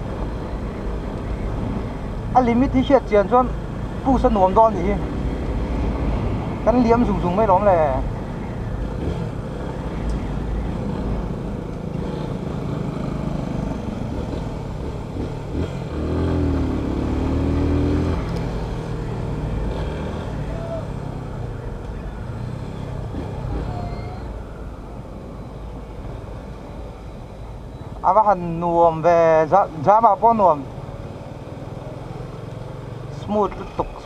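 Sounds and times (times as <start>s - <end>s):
road rumble: 0.0s - 34.0s.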